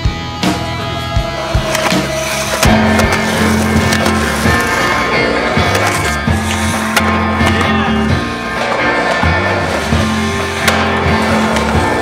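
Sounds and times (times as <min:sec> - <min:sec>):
background music with bassline: 0:00.0 - 0:12.0
skateboard wheels rolling on concrete: 0:00.6 - 0:12.0
skateboard clacks: 0:01.5 - 0:12.0.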